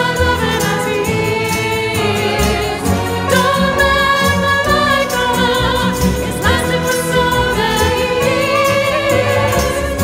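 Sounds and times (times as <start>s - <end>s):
girls' choir singing: 0.0s - 10.0s
piano: 0.0s - 10.0s
strings: 0.0s - 10.0s.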